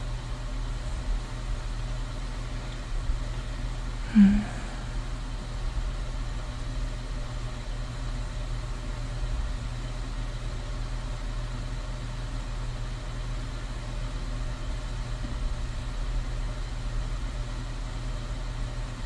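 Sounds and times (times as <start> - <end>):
faint hum: 0.0 - 19.0.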